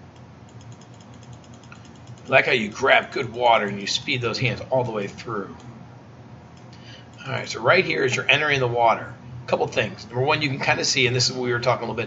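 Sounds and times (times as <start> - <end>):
low steady hum: 0.0 - 12.0
rapid faint clicking: 0.1 - 4.1.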